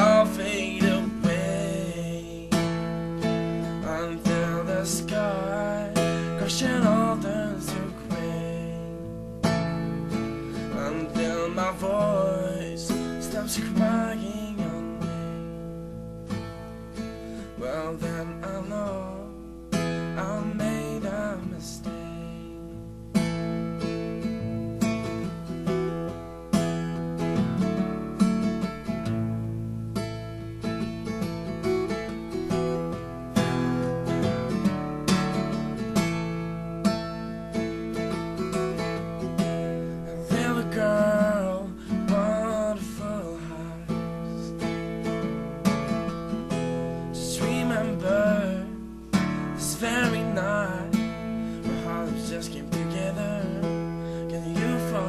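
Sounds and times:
person singing: 0.0s - 2.9s, 3.8s - 9.1s, 10.5s - 15.3s, 17.4s - 19.4s, 20.1s - 22.6s, 39.8s - 44.6s, 47.2s - 48.8s, 49.6s - 55.0s
acoustic guitar strumming: 0.0s - 55.0s.

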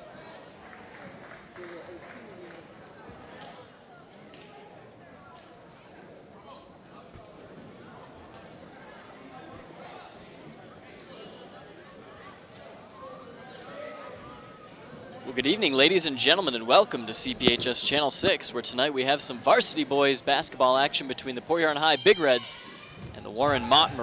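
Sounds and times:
crowd chatter echoing: 0.0s - 24.0s
sneaker squeaks on court: 6.5s - 10.6s, 13.3s - 14.2s.

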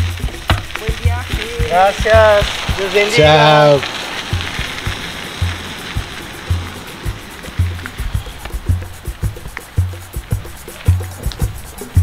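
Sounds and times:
background music with low beat: 0.0s - 12.0s
light percussion ticks: 0.0s - 12.0s.

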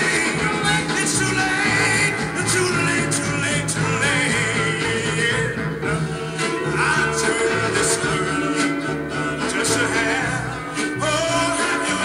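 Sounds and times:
oldies song with singer and band: 0.0s - 12.0s.

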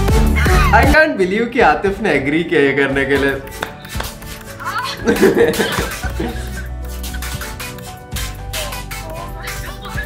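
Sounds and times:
background music with low bass: 0.0s - 10.0s
laughter: 4.9s - 7.5s.

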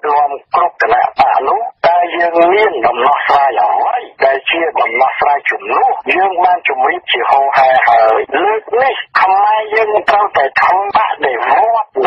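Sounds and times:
person talking radio-like: 0.0s - 12.0s.

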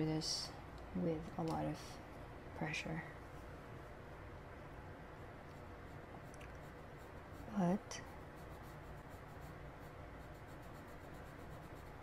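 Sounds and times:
pencil scratching on paper: 5.8s - 12.0s.

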